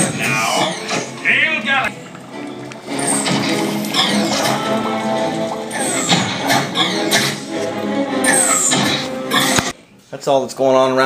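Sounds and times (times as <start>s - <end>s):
film soundtrack music: 0.0s - 9.8s.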